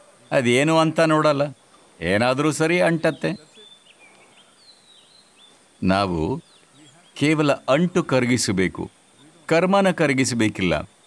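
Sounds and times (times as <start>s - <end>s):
quiet background noise: 0.0s - 11.0s
man speaking: 0.2s - 3.7s, 5.8s - 10.9s.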